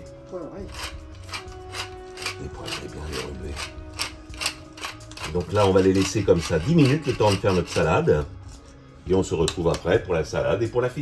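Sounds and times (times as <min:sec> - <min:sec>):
background music: 0:00.0 - 0:11.0
pepper mill grinding: 0:00.6 - 0:08.4.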